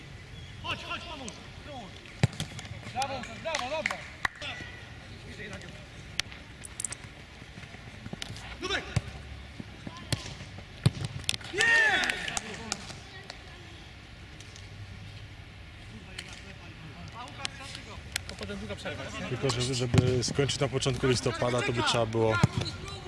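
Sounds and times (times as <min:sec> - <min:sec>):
football being kicked: 0:09.9 - 0:11.2
players shouting: 0:11.4 - 0:12.9.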